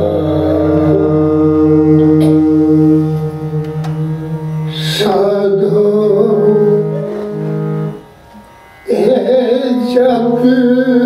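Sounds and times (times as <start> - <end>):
harmonium sustained chord: 0.0 - 11.0.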